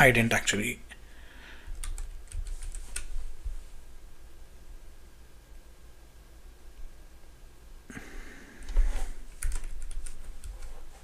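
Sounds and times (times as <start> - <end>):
computer keyboard typing: 1.7 - 3.1, 9.3 - 10.8.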